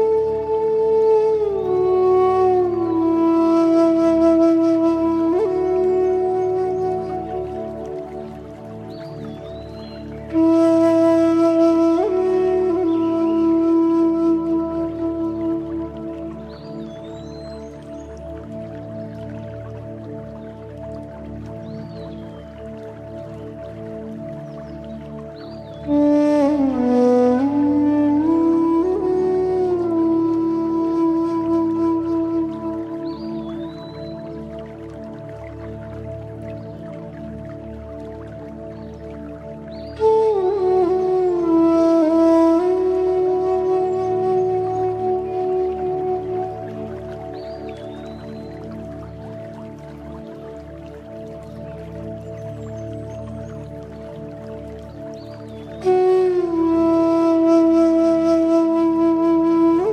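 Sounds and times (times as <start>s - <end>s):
bamboo flute long note: 0.0s - 59.9s.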